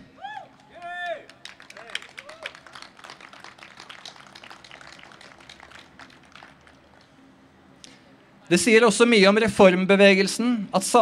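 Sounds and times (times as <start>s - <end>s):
audience applause: 0.8s - 7.1s.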